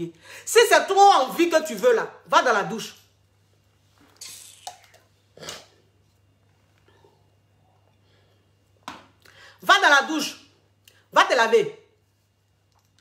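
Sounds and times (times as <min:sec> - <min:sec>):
woman breathing: 0:09.2 - 0:09.6.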